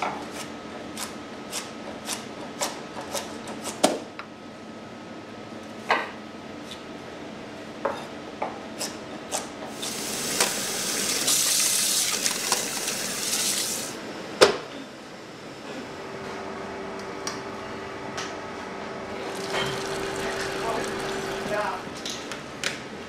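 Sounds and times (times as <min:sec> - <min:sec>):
steady hum: 0:04.2 - 0:23.0
water running: 0:09.8 - 0:14.0.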